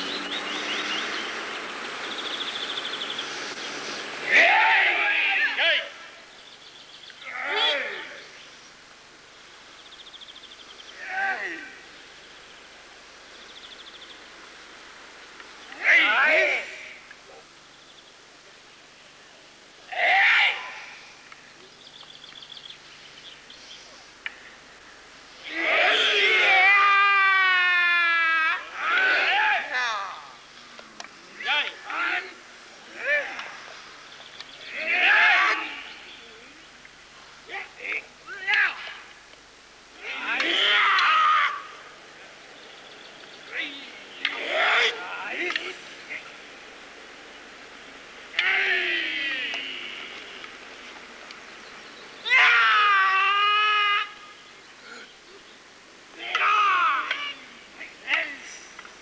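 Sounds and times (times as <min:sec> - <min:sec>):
person shouting: 0:04.3 - 0:06.0, 0:07.2 - 0:08.2, 0:11.0 - 0:11.8, 0:15.8 - 0:17.0, 0:19.9 - 0:21.0, 0:25.5 - 0:30.4, 0:31.4 - 0:33.6, 0:34.7 - 0:35.9, 0:40.0 - 0:41.8, 0:43.6 - 0:45.7, 0:48.4 - 0:49.9, 0:56.2 - 0:58.5.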